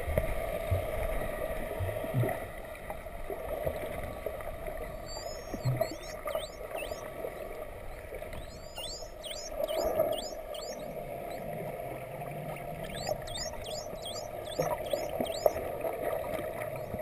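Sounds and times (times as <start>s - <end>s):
muffled water noise: 0.0s - 17.0s
dolphins whistling: 5.0s - 11.6s, 12.5s - 15.7s.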